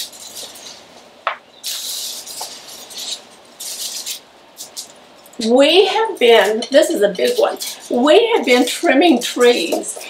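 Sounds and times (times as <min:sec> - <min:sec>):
dry branch twigs rustling: 0:01.6 - 0:05.4.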